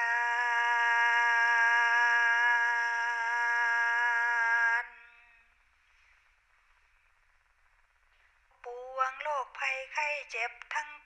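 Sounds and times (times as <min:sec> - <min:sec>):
woman singing a chant: 0:00.0 - 0:05.0, 0:08.6 - 0:11.0.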